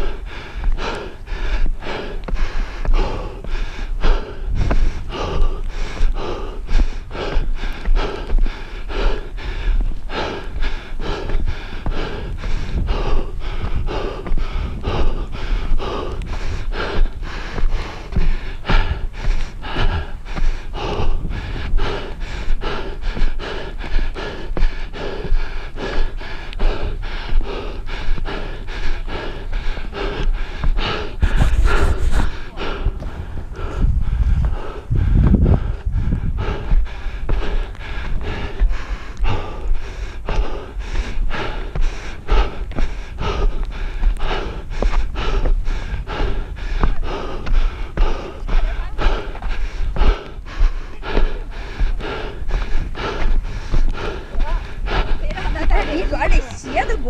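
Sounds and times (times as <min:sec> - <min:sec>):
footsteps on stairs: 0:00.0 - 0:57.0
heavy rhythmic panting: 0:00.0 - 0:57.0.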